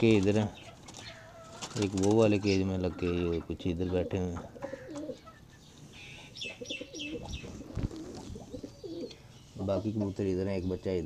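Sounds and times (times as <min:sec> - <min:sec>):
pigeons cooing: 0:00.0 - 0:10.9.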